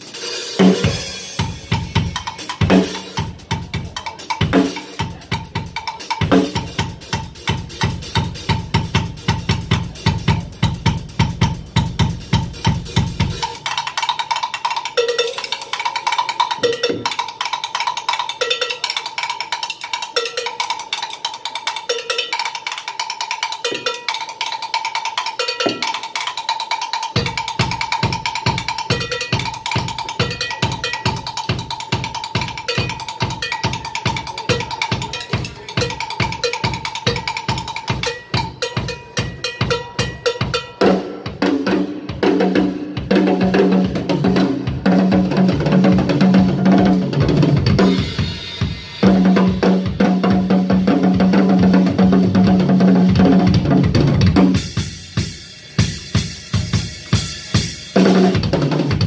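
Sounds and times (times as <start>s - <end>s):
fast drum strokes: 0.0s - 59.0s.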